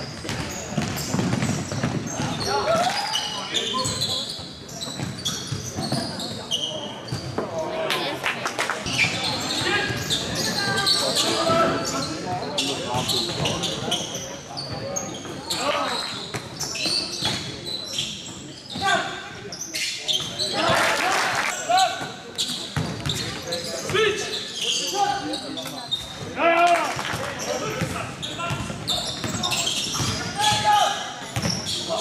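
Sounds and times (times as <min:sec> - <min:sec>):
basketball bouncing on court: 0:00.1 - 0:02.5, 0:27.8 - 0:30.7.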